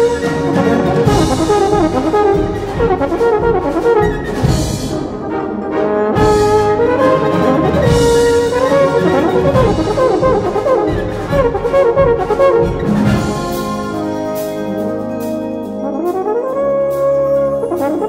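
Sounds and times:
brass band playing: 0.0s - 18.0s.

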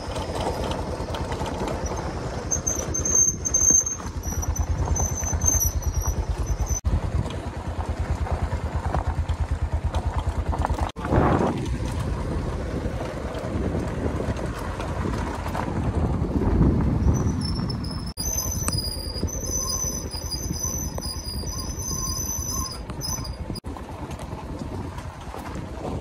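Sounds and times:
motorcycle engine rumble: 0.0s - 26.0s.

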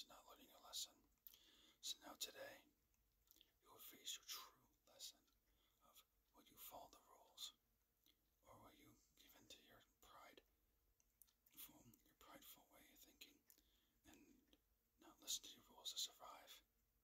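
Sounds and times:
man whispering: 0.0s - 10.6s, 11.2s - 16.9s.

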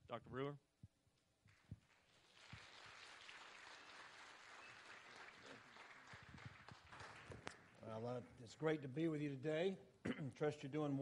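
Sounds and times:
congregation clapping: 1.5s - 8.1s.

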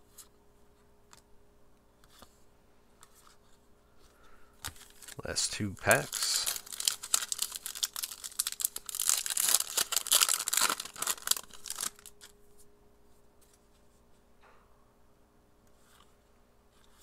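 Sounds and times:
foil card pack tearing: 4.7s - 12.3s.

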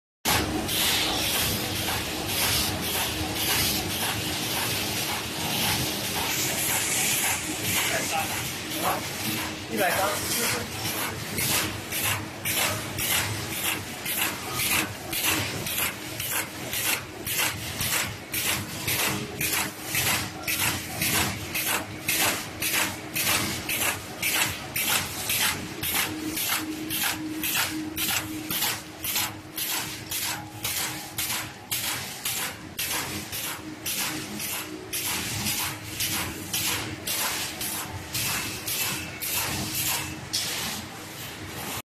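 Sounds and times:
paper cutting machine swishing: 0.3s - 41.8s
steady mechanical hum: 0.3s - 41.8s.

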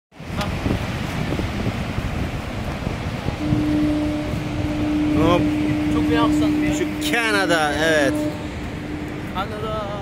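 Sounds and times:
wind buffeting microphone: 0.1s - 10.0s
waterfall roaring: 0.2s - 10.0s.

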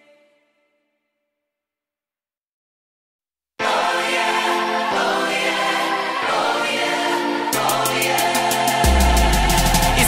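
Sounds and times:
choir singing: 3.6s - 10.0s
steady drum beat: 7.6s - 10.0s.

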